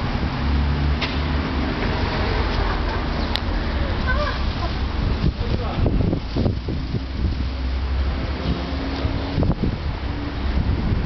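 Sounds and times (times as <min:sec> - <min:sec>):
wind buffeting microphone: 0:01.9 - 0:11.0.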